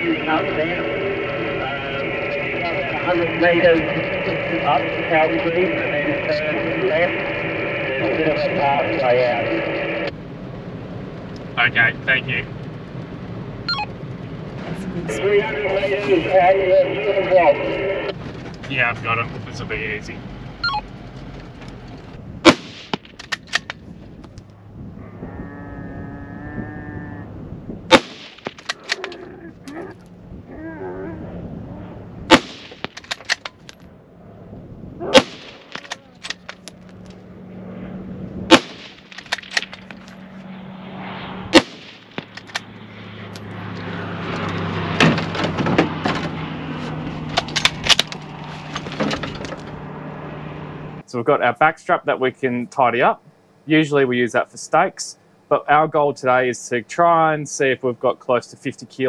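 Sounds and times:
steady low hum: 0:00.0 - 0:59.0
rifle shots: 0:22.4 - 0:23.7, 0:27.9 - 0:29.0, 0:32.3 - 0:33.5, 0:35.1 - 0:36.4, 0:38.5 - 0:39.9, 0:41.5 - 0:42.7.

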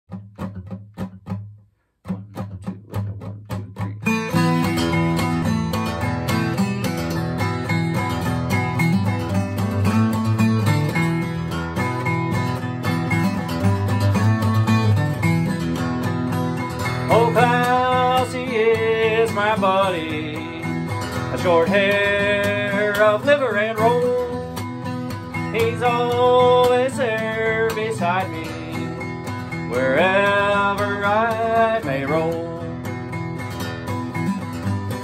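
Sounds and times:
acoustic guitar picking: 0:00.1 - 0:35.0.

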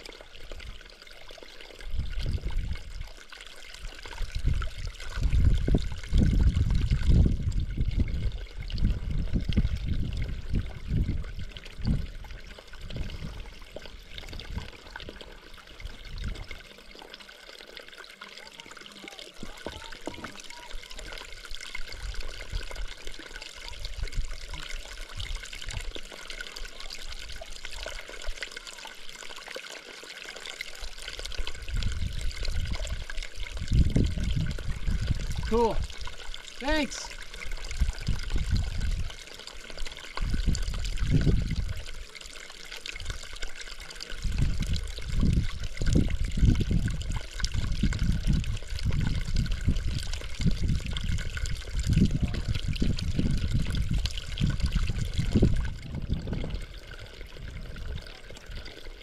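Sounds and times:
water trickling over rocks: 0:00.0 - 0:59.0
low rumbling wind gusts: 0:04.2 - 0:13.5, 0:33.5 - 0:35.6, 0:40.2 - 0:41.8, 0:44.2 - 0:58.0.

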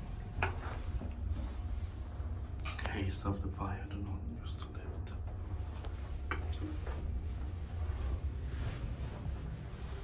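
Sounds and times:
lift hum: 0:00.0 - 0:10.0.

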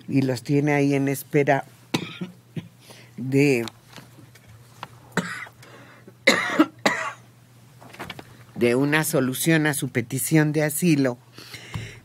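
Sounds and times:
woman coughing: 0:01.9 - 0:02.8, 0:05.2 - 0:05.6, 0:06.2 - 0:07.3.

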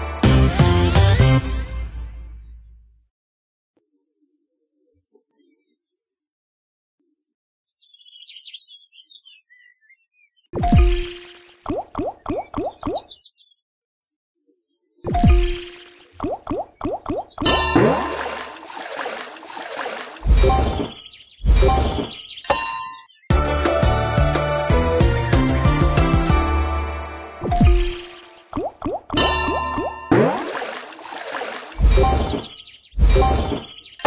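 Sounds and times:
slot game win music: 0:00.0 - 0:02.4, 0:23.3 - 0:28.5
watery bloop falling in pitch: 0:15.1 - 0:20.0, 0:27.4 - 0:32.2.

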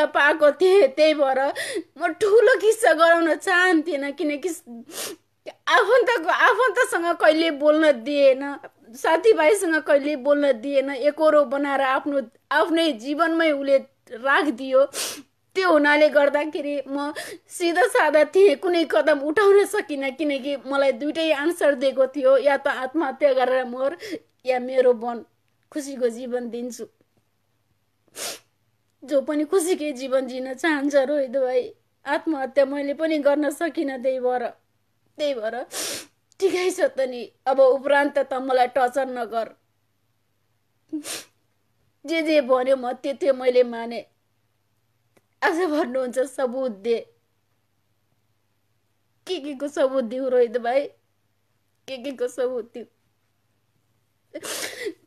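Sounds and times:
woman sharp noisy breath: 0:28.1 - 0:28.5, 0:35.7 - 0:36.2, 0:54.4 - 0:55.0
woman sobbing words: 0:54.3 - 0:55.0.

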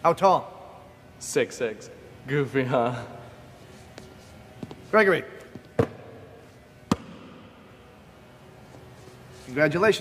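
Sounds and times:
basketball bouncing on gym floor: 0:05.6 - 0:06.2, 0:06.9 - 0:07.4.

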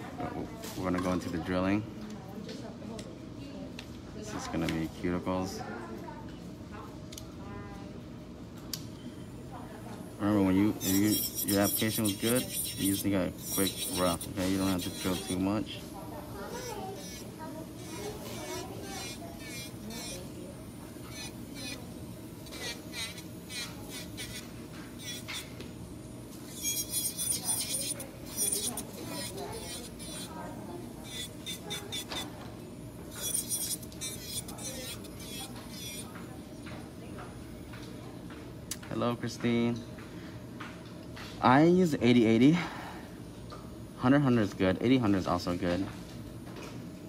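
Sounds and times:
electric nail drill running: 0:10.2 - 0:36.8
drill bit scraping and clicking: 0:10.8 - 0:15.4, 0:25.0 - 0:25.5, 0:26.5 - 0:30.3, 0:31.1 - 0:32.3, 0:33.1 - 0:36.2.

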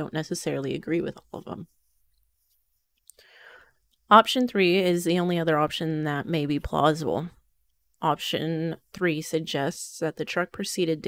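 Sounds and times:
faint intake of breath: 0:03.2 - 0:03.8.

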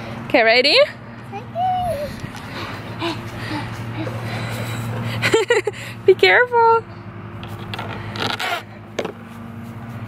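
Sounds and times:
steady low hum: 0:00.0 - 0:10.0
toddler calling out: 0:01.4 - 0:02.2.

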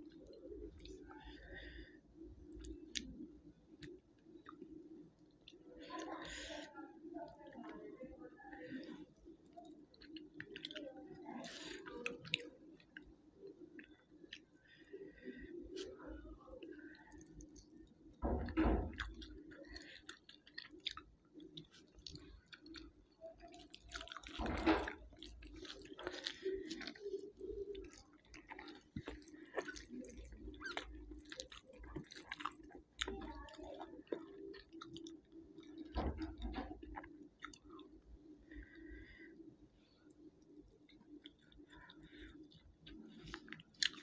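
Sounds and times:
low steady hum: 0:00.0 - 0:44.0
chewing and wet mouth clicks: 0:02.5 - 0:03.2, 0:09.1 - 0:11.0, 0:11.8 - 0:14.6, 0:16.9 - 0:18.1, 0:18.9 - 0:38.0, 0:40.1 - 0:44.0.

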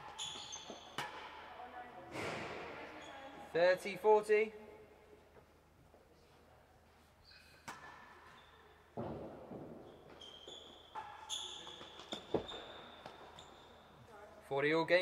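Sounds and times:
shoe squeaks on court floor: 0:00.0 - 0:01.2, 0:07.2 - 0:08.8, 0:09.6 - 0:14.0
ball struck by rackets: 0:00.9 - 0:01.4.

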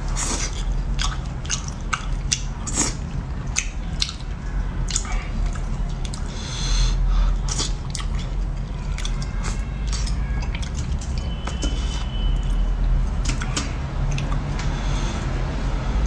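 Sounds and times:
wet chewing with mouth clicks: 0:00.0 - 0:06.4, 0:07.4 - 0:12.6, 0:13.2 - 0:14.7
steady low hum: 0:00.0 - 0:16.0.

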